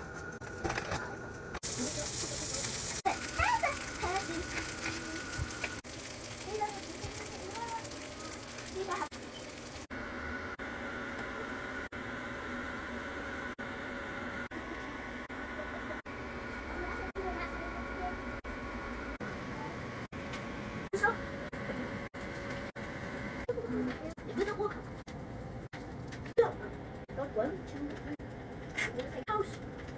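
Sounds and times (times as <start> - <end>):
sausage sizzling on griddle: 1.6 - 9.9
children's voices: 6.4 - 9.1.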